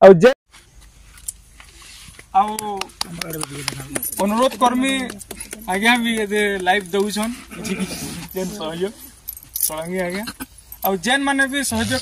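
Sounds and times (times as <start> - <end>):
person speaking: 2.2 - 12.0
light metallic jingling: 3.1 - 7.5, 8.1 - 12.0.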